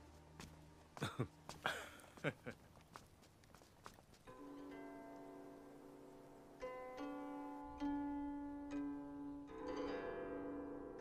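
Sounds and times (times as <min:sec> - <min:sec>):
faint footsteps: 0:00.0 - 0:05.4.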